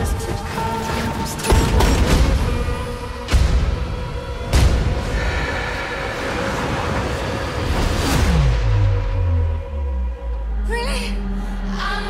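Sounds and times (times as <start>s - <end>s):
trailer music: 0.0s - 12.0s
dense noisy swell: 5.0s - 10.7s.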